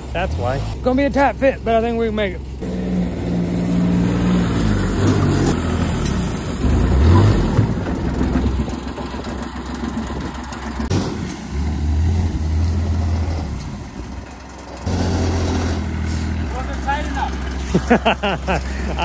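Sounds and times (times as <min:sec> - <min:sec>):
utility vehicle engine running: 0:00.0 - 0:19.0.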